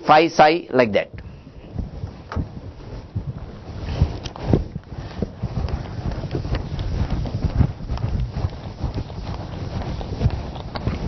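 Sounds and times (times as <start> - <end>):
soft thumps: 1.1 - 8.3
low rumble: 1.1 - 11.0.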